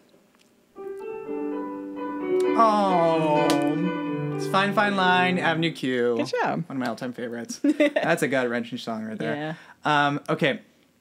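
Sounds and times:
piano playing held notes: 0.8s - 6.6s.

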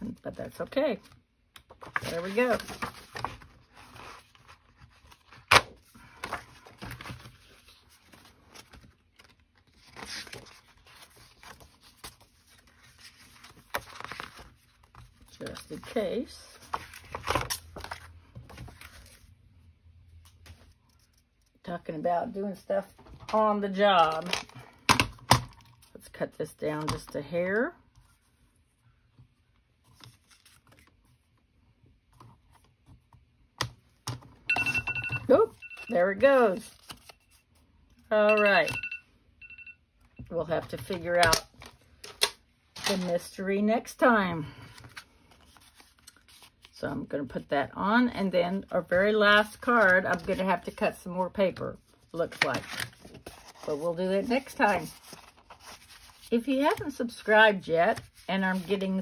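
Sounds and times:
paper rustling: 1.7s - 19.3s, 29.8s - 31.2s, 36.4s - 37.4s, 44.7s - 46.7s, 52.2s - 56.9s, 57.9s - 59.0s.

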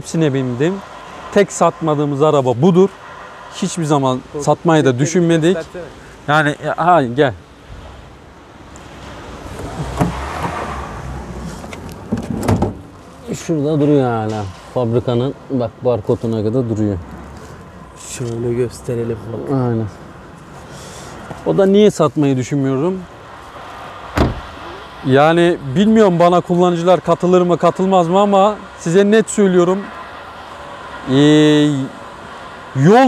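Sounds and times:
car door shutting: 9.5s - 12.9s, 24.1s - 24.6s
car door latch clicks and knocks: 12.1s - 12.8s, 24.2s - 24.4s.

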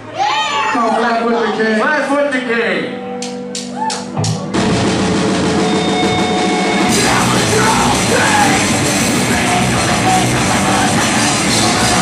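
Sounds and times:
live rock band playing: 3.0s - 12.0s
vocals: 6.8s - 12.0s.

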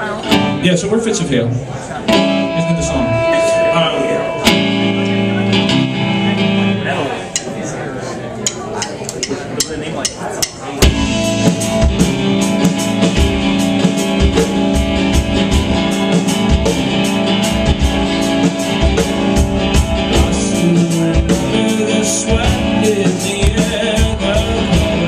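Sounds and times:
electric guitar chords: 0.0s - 0.8s, 2.0s - 7.4s, 10.8s - 25.0s
live rock band playing: 0.0s - 25.0s.

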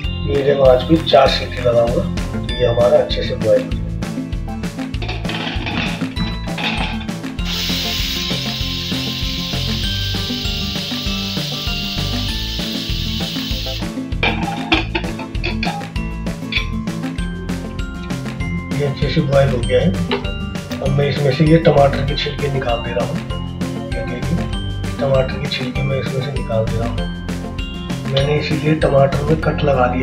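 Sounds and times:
background music: 0.0s - 30.0s
pressure cooker whistling: 7.4s - 14.0s.

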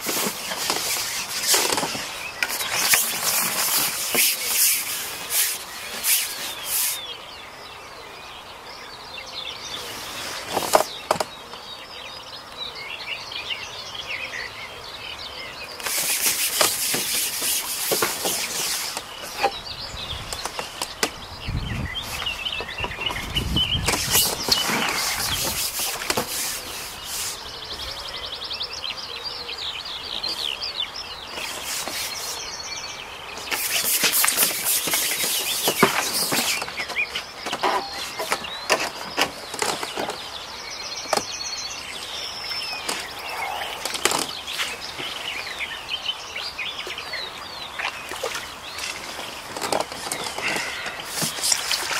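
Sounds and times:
rustling hiss bursts: 0.0s - 7.0s, 15.8s - 19.5s, 23.8s - 27.5s, 31.4s - 32.5s, 33.4s - 37.3s, 50.4s - 51.9s
songbirds chirping and singing: 0.0s - 51.9s.

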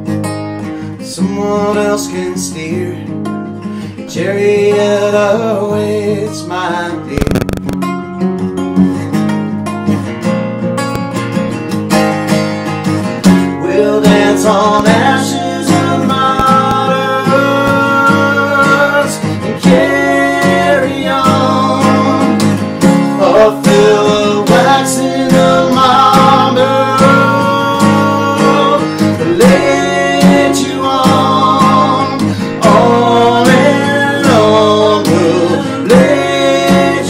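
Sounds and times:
acoustic guitar strumming: 0.0s - 37.0s
men singing together: 13.5s - 37.0s.

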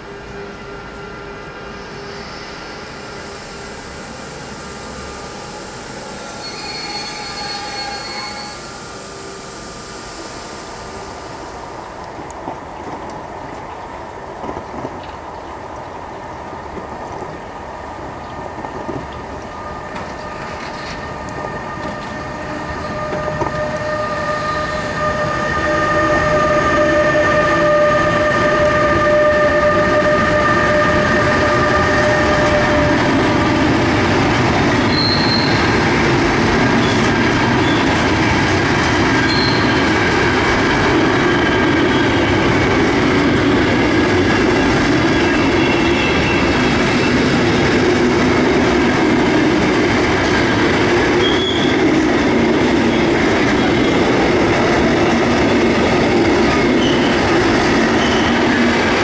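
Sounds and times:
electric locomotive whine: 0.0s - 59.0s
high wheel squeals: 5.4s - 8.9s, 34.8s - 35.8s, 39.2s - 40.0s, 51.2s - 51.9s, 56.6s - 58.6s.

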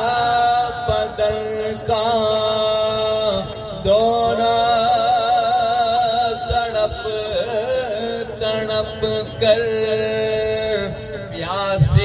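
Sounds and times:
man chanting over loudspeaker: 0.0s - 12.0s.

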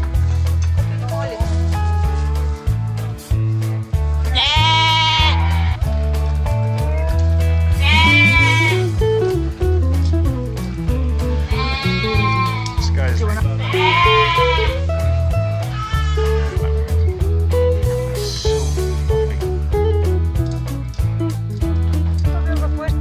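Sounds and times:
background music: 0.0s - 23.0s
lamb bleating: 4.3s - 5.9s, 7.0s - 8.9s, 11.3s - 12.9s, 13.5s - 14.8s, 15.4s - 16.7s.

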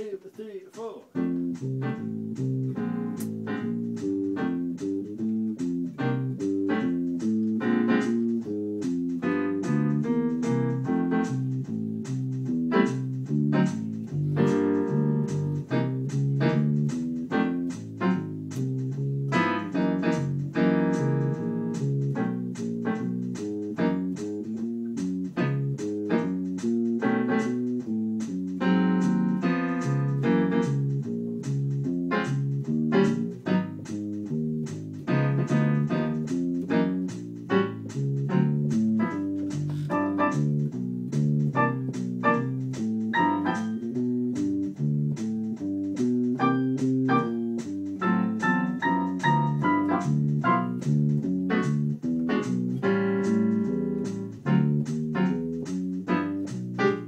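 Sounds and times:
walking blues bass line: 1.1s - 57.0s.

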